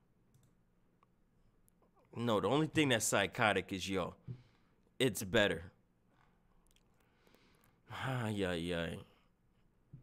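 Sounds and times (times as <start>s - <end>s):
faint computer mouse clicks: 0.3s - 1.1s.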